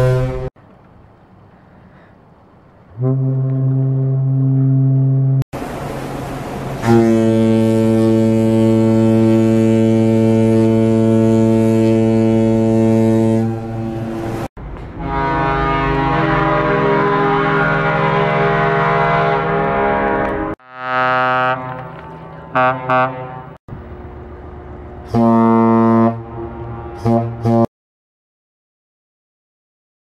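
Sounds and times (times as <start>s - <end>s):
ship horn blasts: 0.0s - 0.5s, 2.9s - 5.4s, 6.6s - 23.6s, 24.8s - 27.7s.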